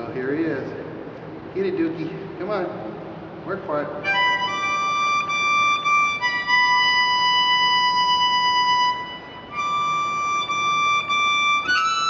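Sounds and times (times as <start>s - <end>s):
harmonica long held notes: 4.0s - 12.0s.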